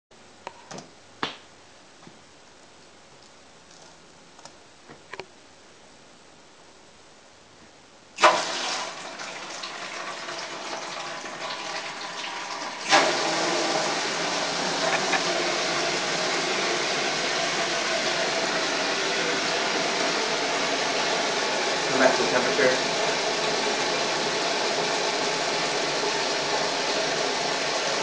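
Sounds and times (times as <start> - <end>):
water pouring into tank: 8.2 - 28.0.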